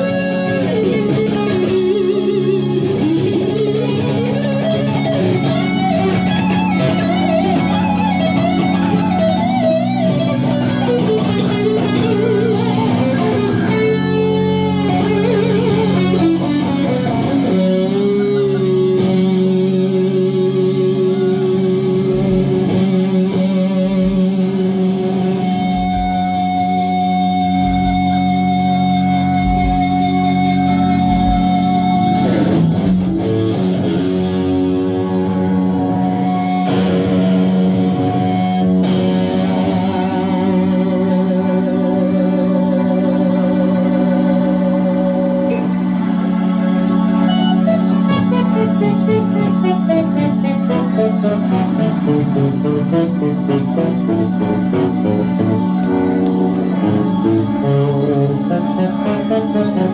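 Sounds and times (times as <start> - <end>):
electric guitar lead with vibrato: 0.0 - 59.9
sustained keyboard chords: 0.0 - 59.9.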